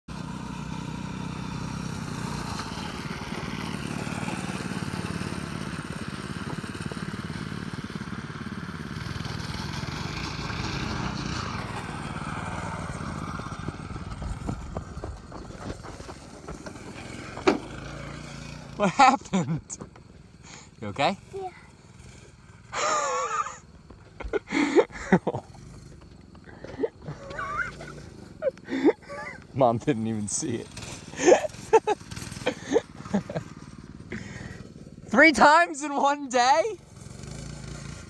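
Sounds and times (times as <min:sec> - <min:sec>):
go-kart engine revving: 0:00.1 - 0:38.0
knocks and clatter: 0:13.6 - 0:17.9.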